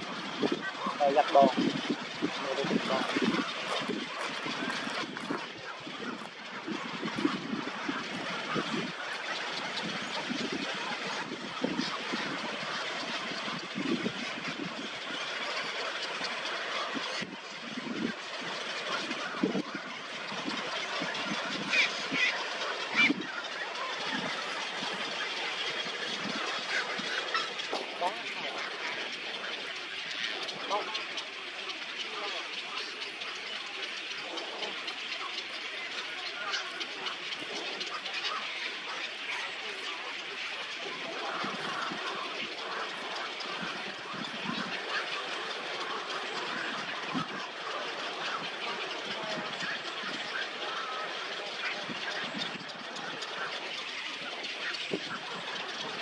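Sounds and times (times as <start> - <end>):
many birds calling: 0.0 - 56.0.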